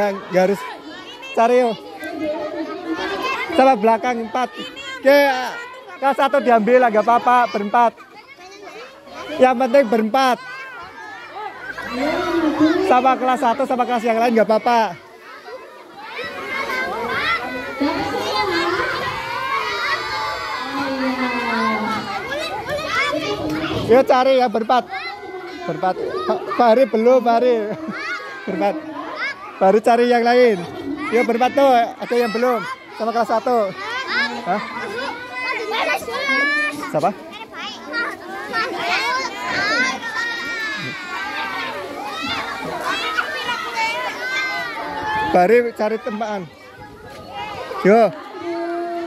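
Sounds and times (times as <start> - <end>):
children chattering and calling out: 0.0 - 49.0.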